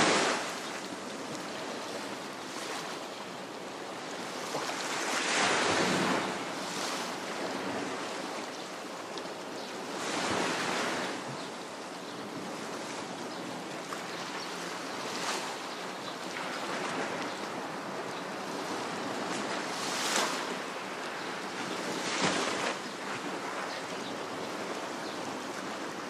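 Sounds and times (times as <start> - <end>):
small waves washing ashore: 0.0 - 26.0.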